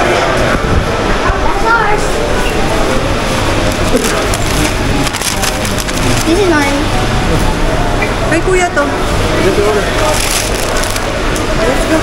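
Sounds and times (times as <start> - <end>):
hubbub of indistinct voices: 0.0 - 12.0
paper bag crinkling: 3.6 - 6.7, 10.0 - 11.2.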